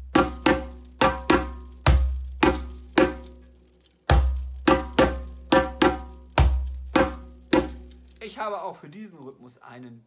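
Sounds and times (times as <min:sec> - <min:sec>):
djembe played with hands: 0:00.0 - 0:08.2.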